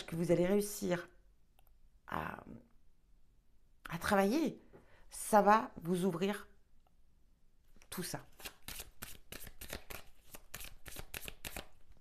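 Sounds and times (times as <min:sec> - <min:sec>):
cards being shuffled: 0:08.3 - 0:12.0.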